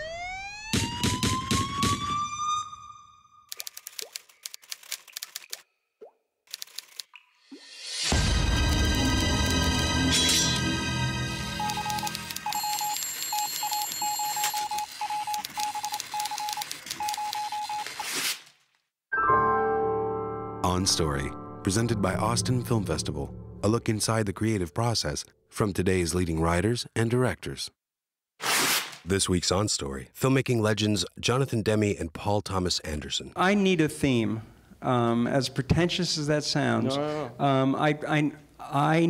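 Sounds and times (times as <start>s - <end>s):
police siren winding up: 0.0s - 3.5s, 11.4s - 18.0s
rapid clipped beeps: 11.6s - 17.9s.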